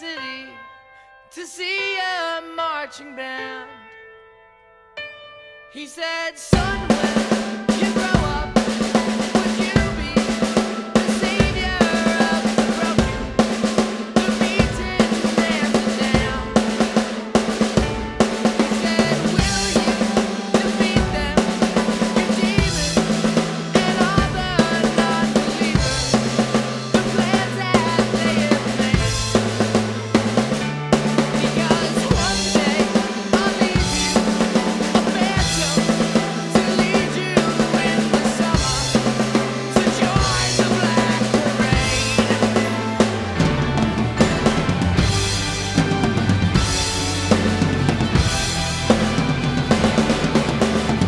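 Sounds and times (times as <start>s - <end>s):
backing track: 6.4s - 51.0s
drum kit beat with rolls: 6.5s - 51.0s
bass line: 6.6s - 51.0s.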